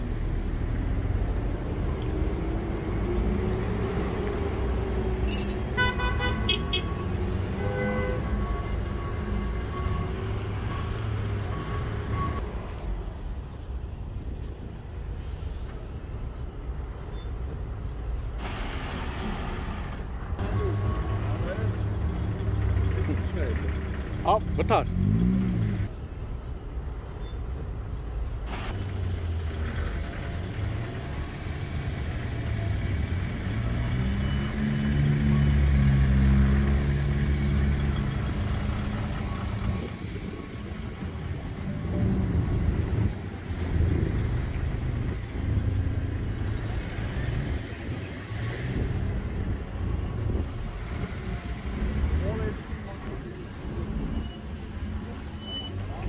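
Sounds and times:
road traffic passing: 0.0s - 56.0s.

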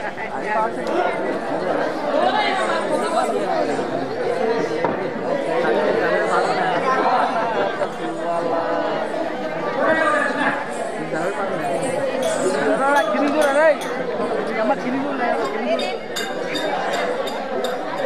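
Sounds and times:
crowd chatter: 0.0s - 18.0s.

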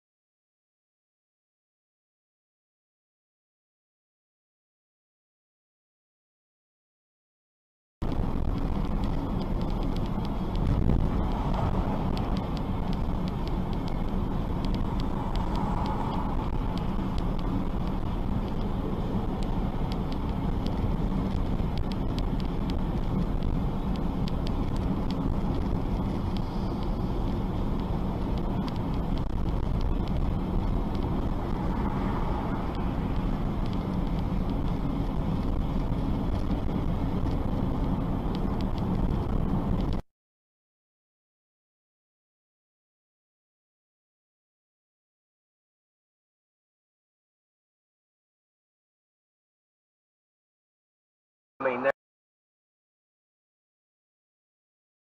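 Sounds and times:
car road and engine rumble: 8.0s - 40.0s, 51.6s - 51.9s.

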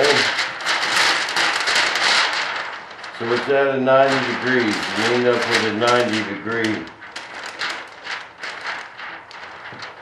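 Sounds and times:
plastic film crinkling: 0.0s - 10.0s.

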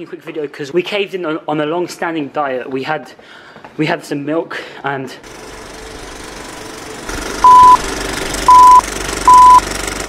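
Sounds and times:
film projector clatter: 5.2s - 10.0s.

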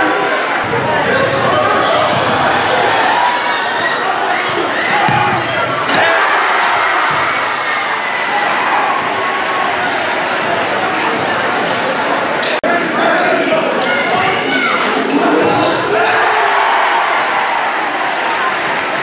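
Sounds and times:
crowd and player voices: 0.0s - 19.0s.

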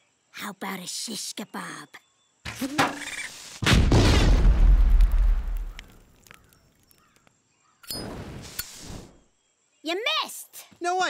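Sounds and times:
cartoon explosion boom: 3.6s - 5.7s.

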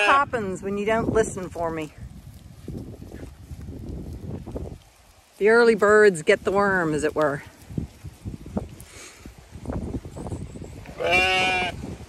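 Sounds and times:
soft shuffling and rustling: 1.2s - 10.1s
sheep bleating: 10.9s - 11.8s.

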